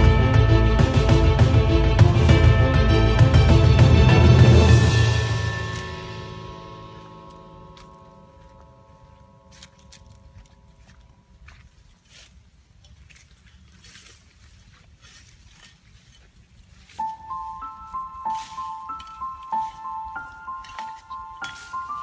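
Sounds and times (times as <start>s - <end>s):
background music: 0.0s - 11.6s, 16.9s - 22.0s
rustles in grass and brush: 4.8s - 22.0s.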